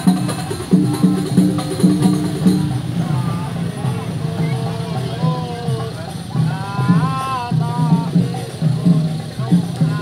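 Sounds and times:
percussion music: 0.0s - 10.0s
voices: 0.0s - 10.0s.

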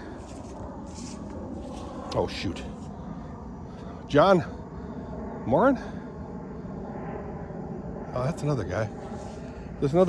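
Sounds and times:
distant engine drone: 0.0s - 10.0s.

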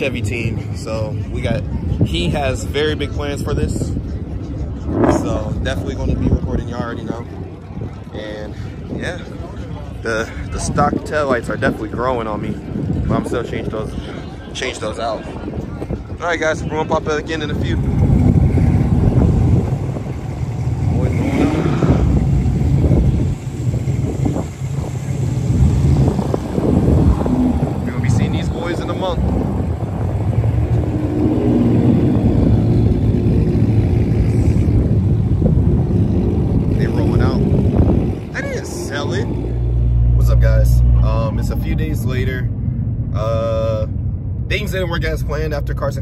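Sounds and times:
car engines pulling away: 0.0s - 46.0s
wind rumble on microphone: 0.0s - 46.0s.

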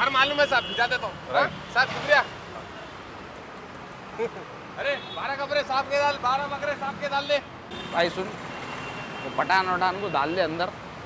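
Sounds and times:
men talking: 0.0s - 3.0s, 4.0s - 8.4s, 9.2s - 10.8s
street traffic: 0.0s - 11.0s.

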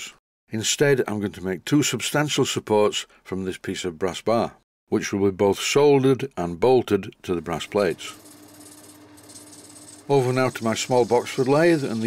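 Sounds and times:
metalworking lathe humming: 7.7s - 12.0s
tool hissing on brass: 7.7s - 12.0s.

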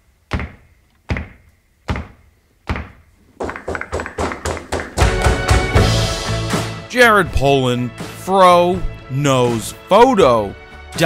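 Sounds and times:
heavy echoing thunks: 0.3s - 6.6s.

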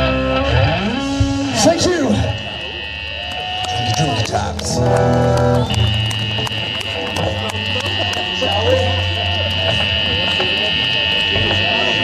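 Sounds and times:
low amplifier hum: 0.0s - 12.0s
steady high whine: 0.0s - 12.0s
faint voices: 1.0s - 12.0s.

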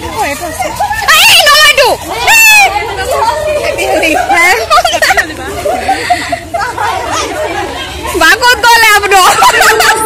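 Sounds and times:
young women chattering: 0.0s - 10.0s.

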